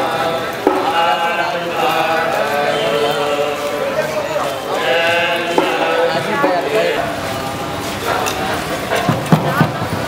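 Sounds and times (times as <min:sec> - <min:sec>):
men chanting hymns in unison: 0:00.0 - 0:08.7.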